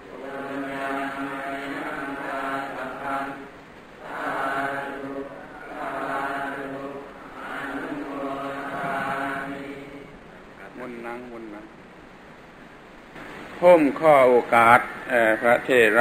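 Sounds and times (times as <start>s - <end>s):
monks chanting in monotone: 0.0s - 10.8s, 13.8s - 16.0s.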